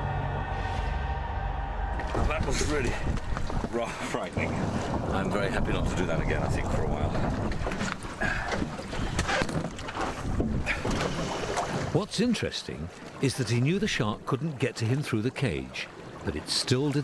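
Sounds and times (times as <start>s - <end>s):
water splashing around boat: 1.9s - 17.0s
wind buffeting microphone: 2.0s - 11.1s.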